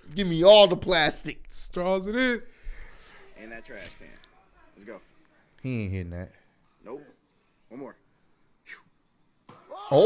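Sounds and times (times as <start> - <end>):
person screaming: 9.7 - 10.0.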